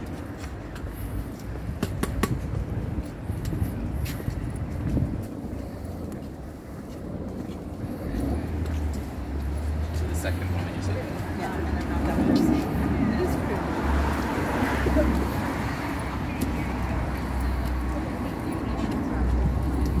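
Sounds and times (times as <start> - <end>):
footsteps clicking on pavement: 0.0 - 20.0
passers-by voices: 0.0 - 20.0
road traffic rumble: 0.0 - 20.0.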